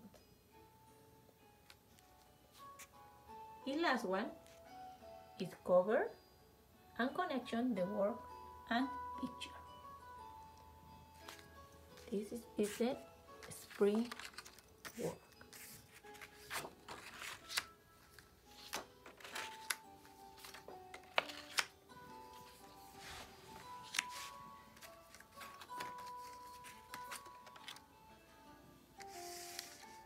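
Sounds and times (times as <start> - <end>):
quiet background music: 0.0 - 30.0
paper cards clicking and rustling: 13.4 - 21.8, 23.0 - 27.9, 29.0 - 30.0.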